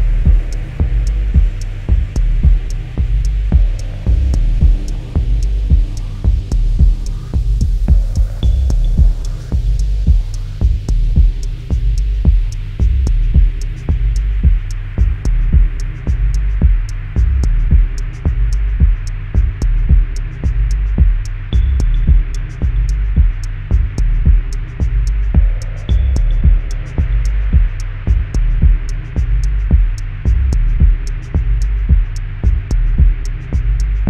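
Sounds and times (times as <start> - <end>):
deep kick drum: 0.0 - 34.0
hi-hat ticks: 0.0 - 34.0
low droning bass pad: 0.0 - 34.0.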